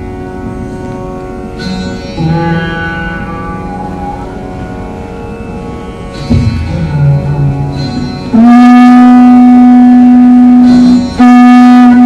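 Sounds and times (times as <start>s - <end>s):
veena playing long note: 0.0s - 12.0s.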